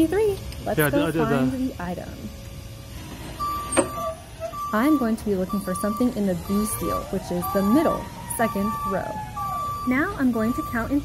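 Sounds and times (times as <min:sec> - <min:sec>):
reach truck drive rumble: 0:00.0 - 0:11.0
steady high tone: 0:00.0 - 0:11.0.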